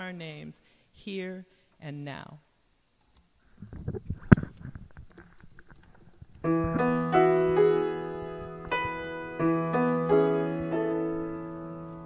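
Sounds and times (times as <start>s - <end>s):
soft rustles: 3.4s - 9.4s.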